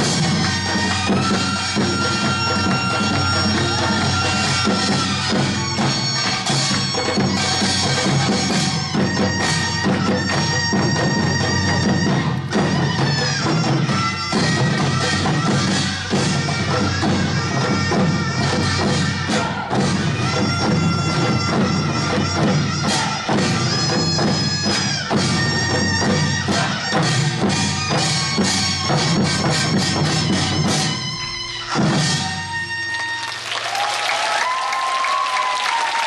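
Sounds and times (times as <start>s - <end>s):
reedy wind instrument melody: 0.0s - 36.0s.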